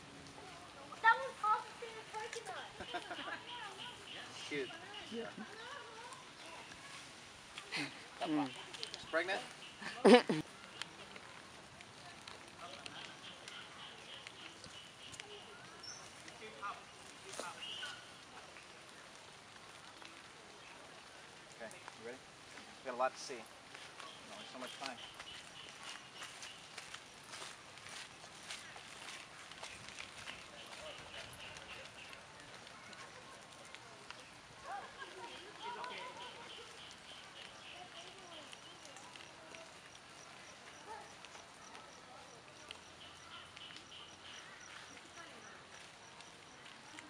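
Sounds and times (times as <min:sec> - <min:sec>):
faint distant voices: 0:00.0 - 0:47.0
soft ticks: 0:35.3 - 0:41.9.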